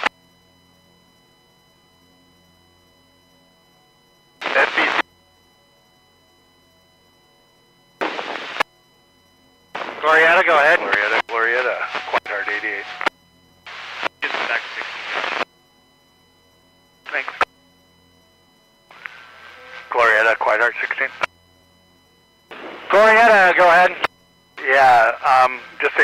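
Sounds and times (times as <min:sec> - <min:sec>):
radio voice transmissions: 0:04.4 - 0:05.1, 0:09.8 - 0:13.1, 0:13.7 - 0:15.5, 0:17.0 - 0:17.5, 0:18.9 - 0:21.3, 0:22.5 - 0:26.0.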